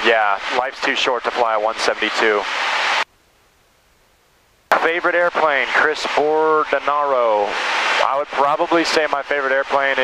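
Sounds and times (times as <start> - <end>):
man's voice: 4.7 - 10.0.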